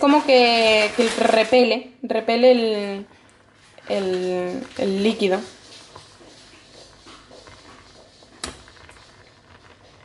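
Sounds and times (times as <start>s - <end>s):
whisk stirring in saucepan: 3.4s - 10.0s.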